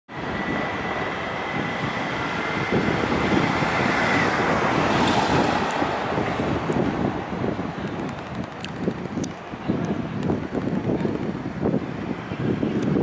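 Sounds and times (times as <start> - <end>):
city street traffic: 0.1 - 13.0
wind buffeting microphone: 0.1 - 13.0.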